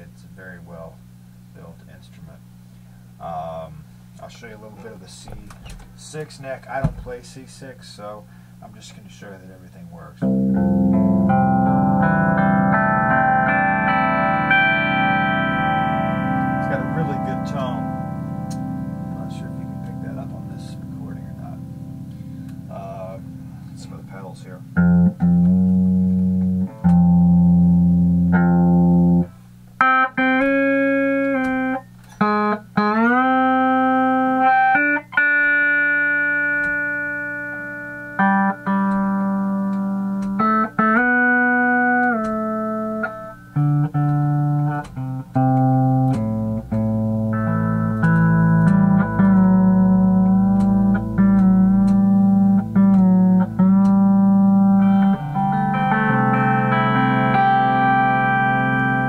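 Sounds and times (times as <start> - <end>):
pedal steel guitar: 10.2 - 59.0.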